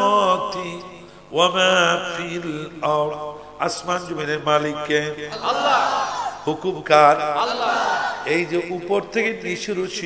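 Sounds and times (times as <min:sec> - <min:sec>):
man chanting: 0:00.0 - 0:05.8, 0:06.4 - 0:10.0.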